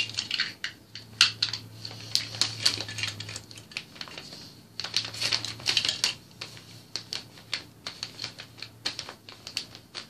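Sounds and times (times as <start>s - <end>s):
plastic bricks clicking: 0.0s - 3.9s.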